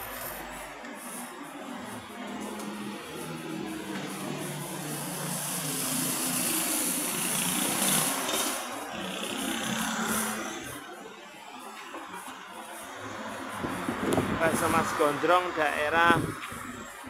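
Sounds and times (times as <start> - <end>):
motor vehicle passing: 0.1 - 17.0.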